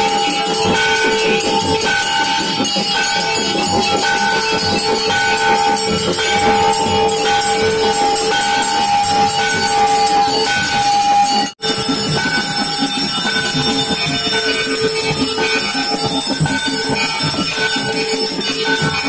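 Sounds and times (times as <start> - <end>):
bells ringing: 0.0 - 19.0.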